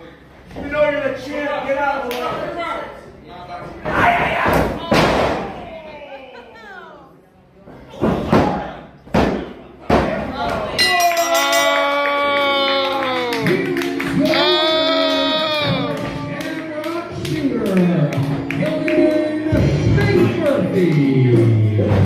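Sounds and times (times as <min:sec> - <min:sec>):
people shouting: 0:14.2 - 0:16.0.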